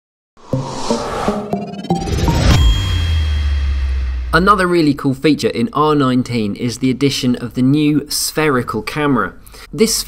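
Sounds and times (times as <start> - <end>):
deep bass tone swooping down: 0.4 - 5.0
logo sting ding: 1.3 - 4.9
thin high ring: 1.3 - 4.9.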